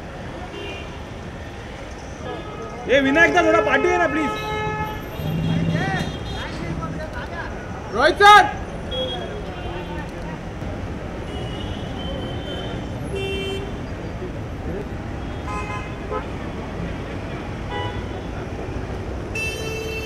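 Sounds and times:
crowd noise: 0:00.0 - 0:19.4
traffic rumble: 0:00.0 - 0:20.0
vehicle horn toots: 0:02.3 - 0:06.8.

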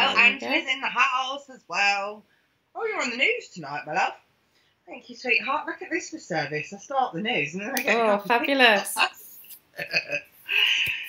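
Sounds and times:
throaty vocal sounds: 0:09.8 - 0:11.0.

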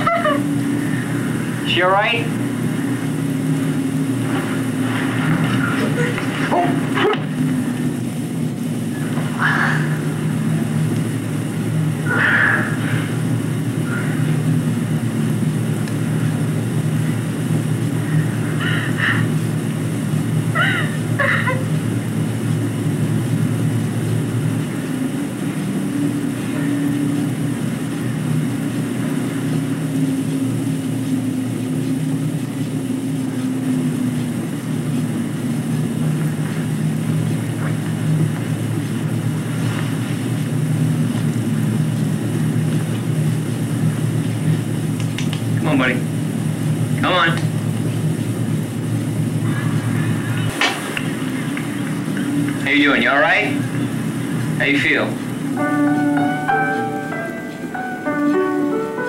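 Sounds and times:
editing machine humming: 0:00.0 - 0:59.0
faint high sounds: 0:55.5 - 0:59.0.

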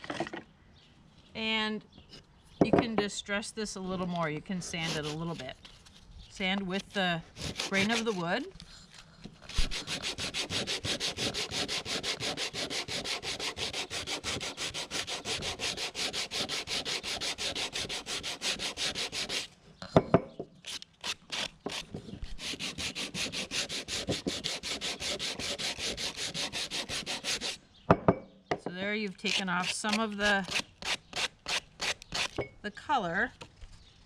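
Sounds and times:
sandpaper rubbing on wood: 0:04.7 - 0:05.4, 0:07.4 - 0:08.2, 0:09.5 - 0:19.5, 0:20.7 - 0:27.6
sharp knocks: 0:27.9 - 0:28.7.

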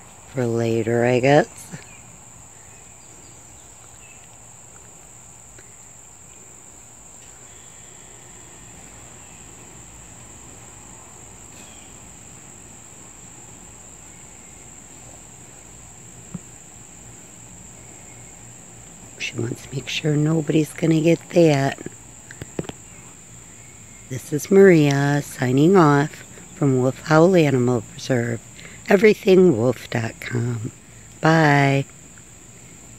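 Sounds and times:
crickets chirping: 0:00.0 - 0:32.9.

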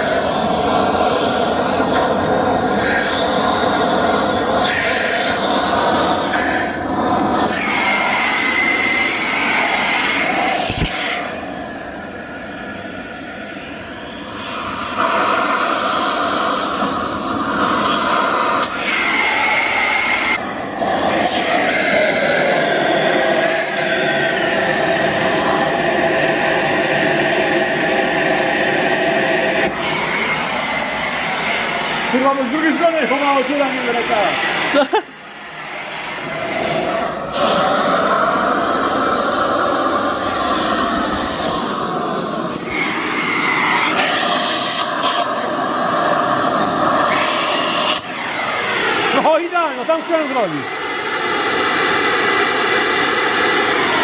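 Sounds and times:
gas cutting torch roaring: 0:00.0 - 0:54.0.

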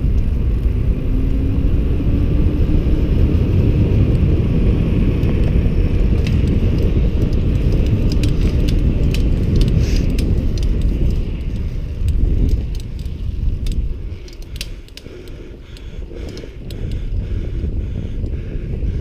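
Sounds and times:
bike clicks and rattles: 0:00.0 - 0:19.0
wind buffeting microphone: 0:00.0 - 0:19.0.

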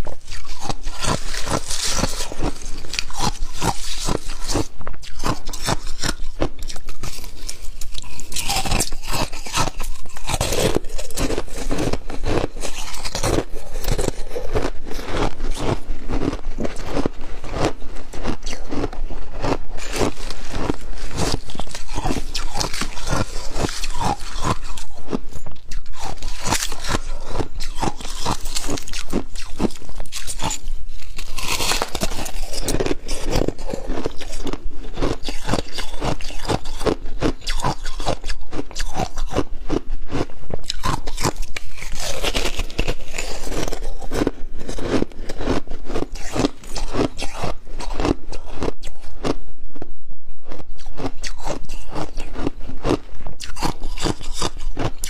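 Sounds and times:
metal spoon scraping ice: 0:00.0 - 0:15.8, 0:19.4 - 0:24.9, 0:25.9 - 0:38.2, 0:40.7 - 0:48.1
slushy ice being crunched: 0:00.3 - 0:24.9, 0:25.8 - 0:38.2, 0:40.1 - 0:47.3.

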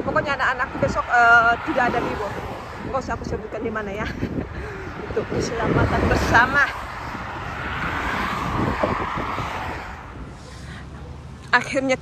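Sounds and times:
motorway traffic rushing: 0:00.0 - 0:12.0.

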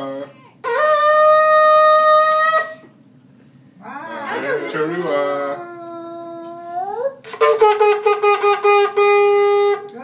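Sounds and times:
shofar long note: 0:00.0 - 0:02.8, 0:07.2 - 0:09.9.

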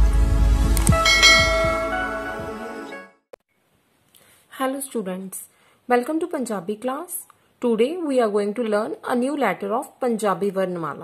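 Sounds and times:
bell-like chime: 0:00.9 - 0:02.5.

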